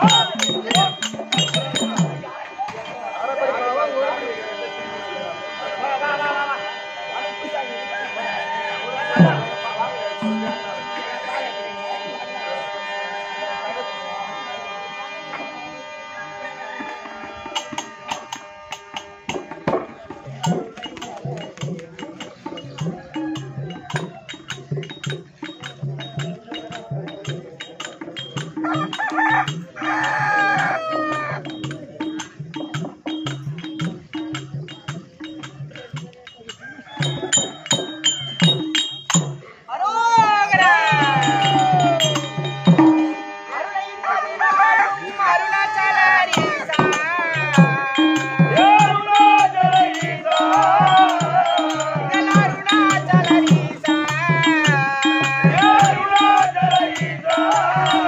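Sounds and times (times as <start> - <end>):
percussion beat: 0.0 - 3.5, 8.8 - 11.5, 16.8 - 58.0
wavering singing voice: 0.0 - 6.8, 7.9 - 15.9, 19.8 - 58.0.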